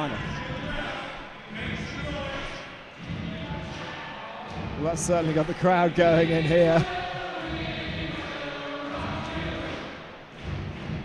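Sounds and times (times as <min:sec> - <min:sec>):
arena crowd cheering and chanting: 0:00.0 - 0:11.0.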